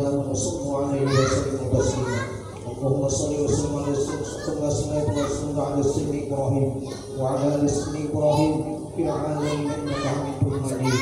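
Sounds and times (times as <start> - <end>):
man reciting prayer: 0.0 - 11.0
man speaking: 0.0 - 11.0
children's high-pitched voices: 0.9 - 2.7, 3.7 - 5.5, 6.8 - 11.0.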